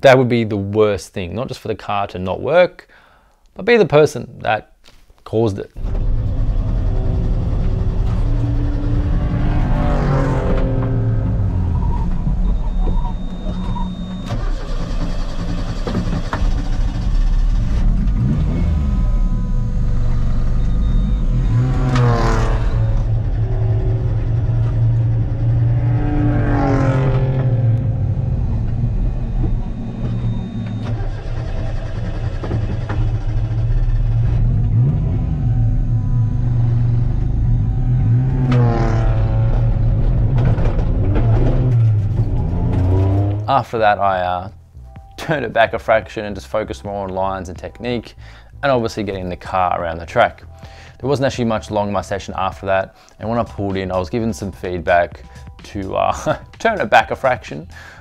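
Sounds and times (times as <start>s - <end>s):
car engine revving from cabin: 5.8s - 43.6s.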